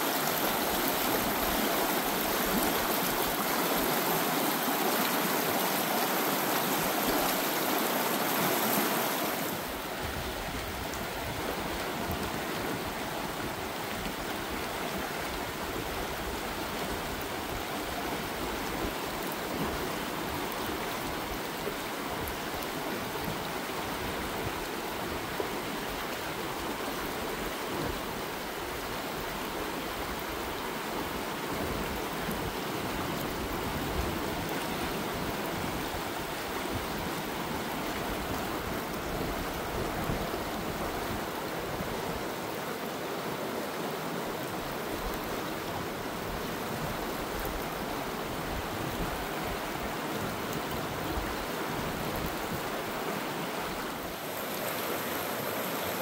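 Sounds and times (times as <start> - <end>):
creek running over stones: 0.0 - 56.0.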